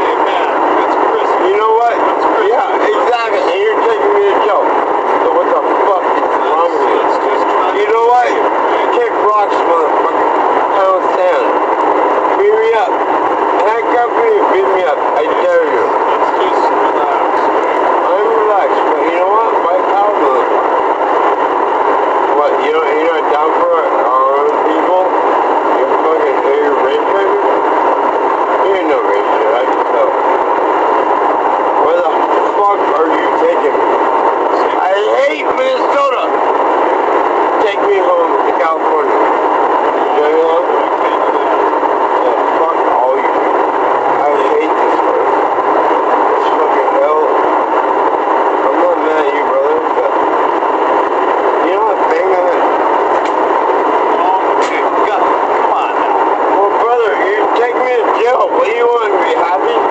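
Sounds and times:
muffled indistinct voices: 0.0s - 59.9s
steady loud hiss: 0.0s - 59.9s.

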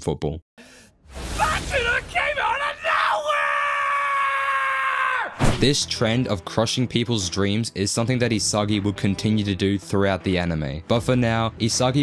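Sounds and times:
man screaming high pitch: 1.4s - 5.4s.

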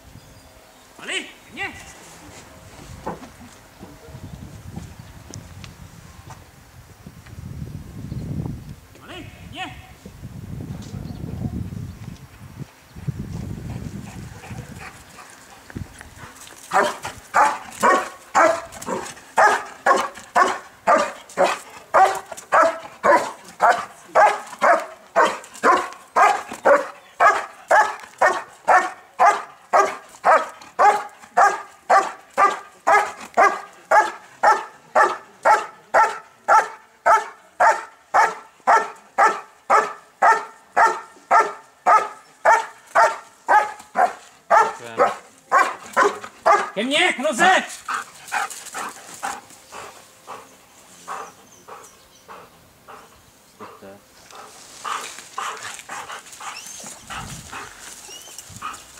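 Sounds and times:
dog barking rhythmically: 16.7s - 46.8s.

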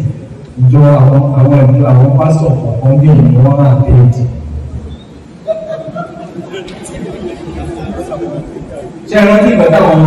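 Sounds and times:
chatter of voices in a hall: 0.0s - 10.0s.

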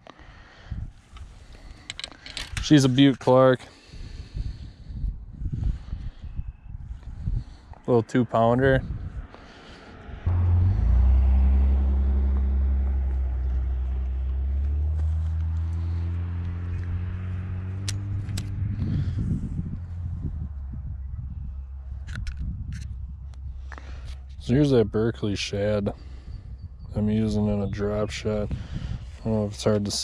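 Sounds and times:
vehicle engine passing by: 8.6s - 26.3s.

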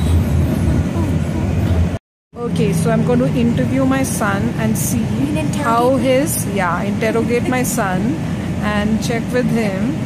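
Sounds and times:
rail car rumble: 0.0s - 10.0s.

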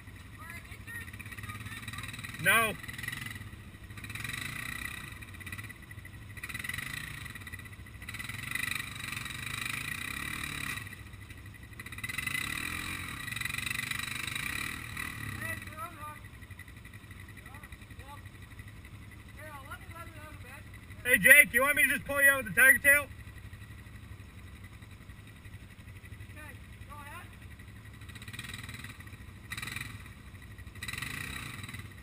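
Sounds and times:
quad engine revving: 0.8s - 11.1s, 11.8s - 16.3s, 19.4s - 23.1s, 26.3s - 32.0s.

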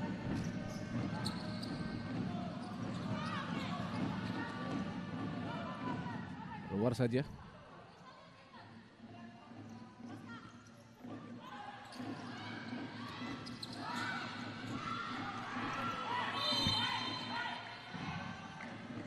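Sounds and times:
shoes squeaking on court floor: 0.3s - 4.8s, 11.8s - 14.9s.

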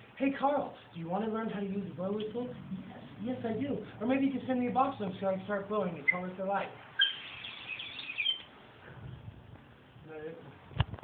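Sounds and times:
toy whistle warbling chirp: 7.0s - 8.5s.

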